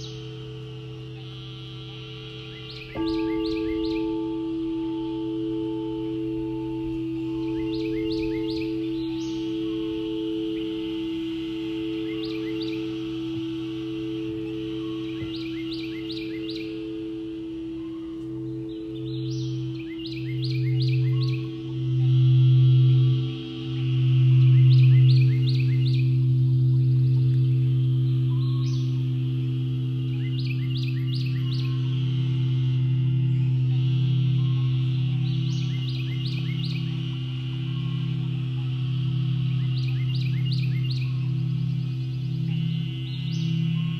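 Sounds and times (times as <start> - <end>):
crystal singing bowls ringing: 0.0 - 43.9
deep singing bowl pulsing: 0.0 - 43.9
high chirping calls: 0.0 - 43.9.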